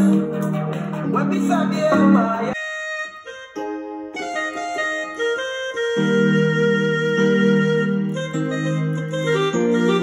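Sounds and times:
electronic keyboard piano chords: 0.0s - 10.0s.

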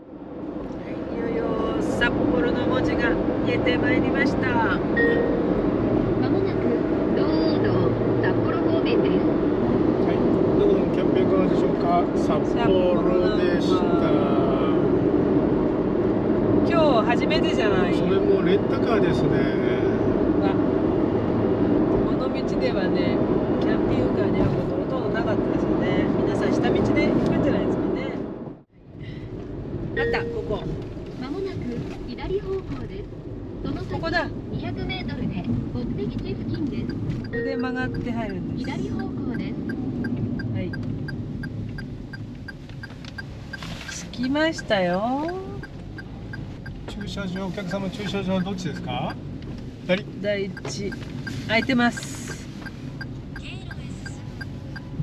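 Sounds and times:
road and engine noise in cabin: 0.0s - 55.0s.

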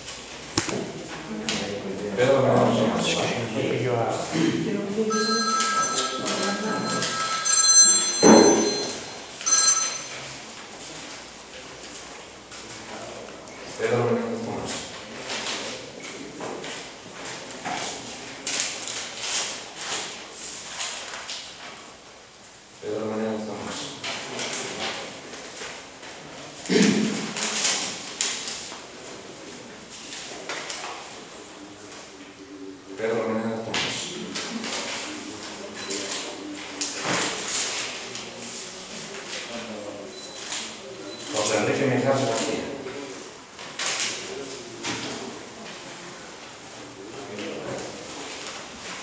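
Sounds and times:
mobile phone ringtone: 5.1s - 10.3s
paper rustling: 14.7s - 21.9s, 34.2s - 39.8s.

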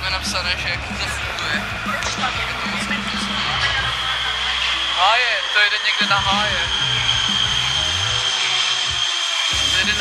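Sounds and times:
background music with low notes: 0.0s - 10.0s
high-pitched whine and hiss: 0.1s - 10.0s.

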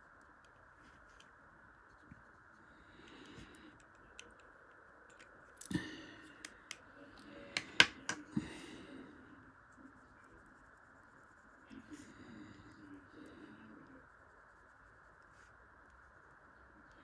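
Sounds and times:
pens clicking: 3.0s - 6.9s, 7.6s - 8.3s
pens knocking on wooden table: 7.6s - 8.2s.

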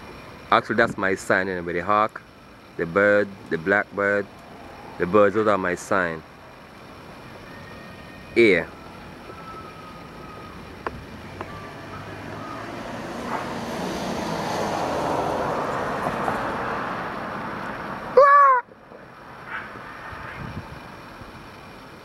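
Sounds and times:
vehicle passing: 2.6s - 21.9s.

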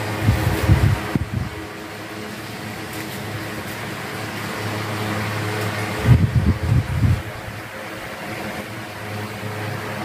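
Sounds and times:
electric fans whirring: 0.0s - 10.0s
electric motor hum: 0.0s - 10.0s.

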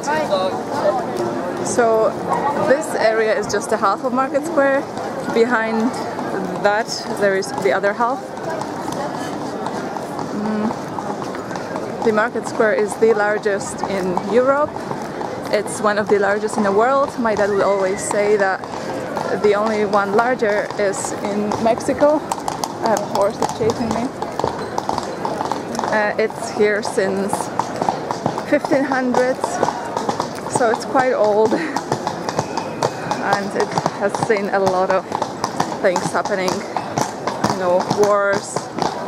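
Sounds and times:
horse hooves on stone: 0.0s - 39.0s
people chattering: 0.0s - 39.0s
voices of passers-by: 0.0s - 39.0s.

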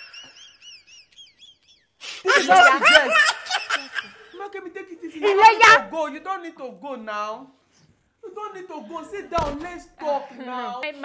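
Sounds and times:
woman laughing: 0.0s - 4.1s
woman speaking: 2.3s - 3.2s, 5.2s - 5.9s.

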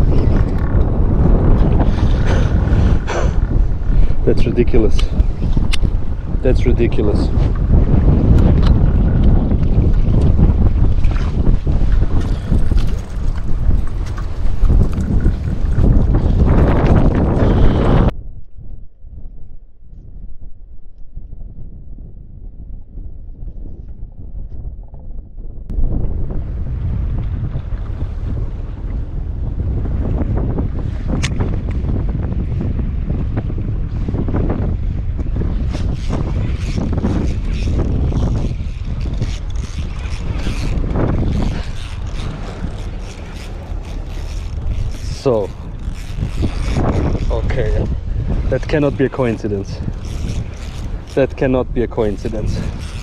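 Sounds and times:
wind buffeting microphone: 0.0s - 53.0s.

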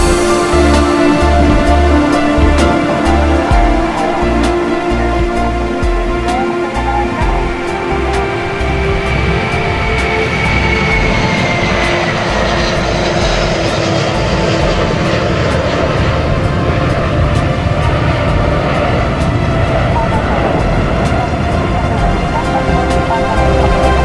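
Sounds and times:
background music with beat: 0.0s - 24.0s
jet engines at takeoff: 0.0s - 24.0s.

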